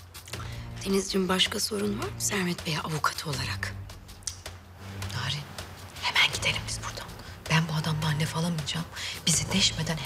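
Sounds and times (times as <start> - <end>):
woman speaking: 0.8 - 3.8, 5.1 - 10.0.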